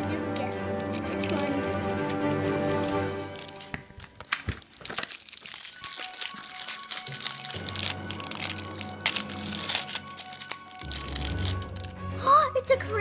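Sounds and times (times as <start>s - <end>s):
background music: 0.0s - 13.0s
plastic wrapping crinkling: 0.2s - 12.2s.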